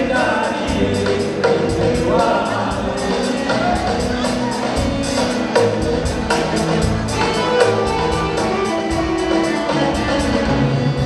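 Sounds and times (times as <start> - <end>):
man singing into a microphone: 0.0 - 3.9
backing voices singing: 0.0 - 9.2
steady beat: 0.0 - 11.0.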